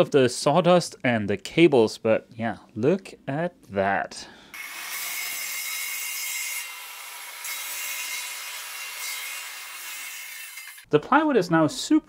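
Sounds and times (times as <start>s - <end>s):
circular saw cutting plywood: 4.6s - 10.9s.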